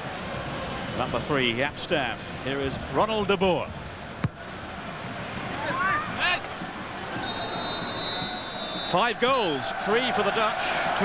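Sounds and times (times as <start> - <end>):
stadium crowd noise: 0.0 - 11.0
shrill whistle: 7.2 - 9.0.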